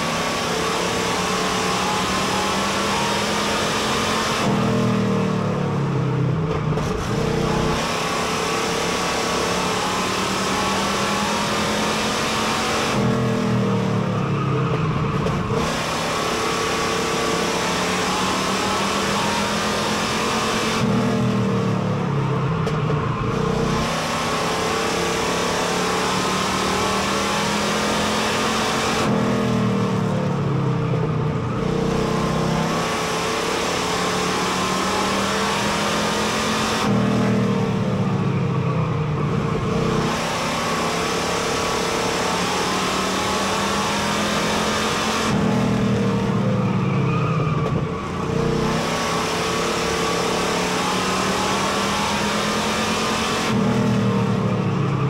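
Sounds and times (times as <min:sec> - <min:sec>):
race car engine revving: 0:00.0 - 0:55.0.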